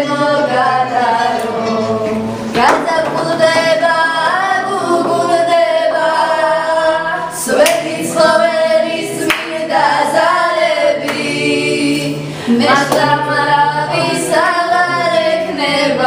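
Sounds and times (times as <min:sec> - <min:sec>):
women singing unaccompanied: 0:00.0 - 0:16.0.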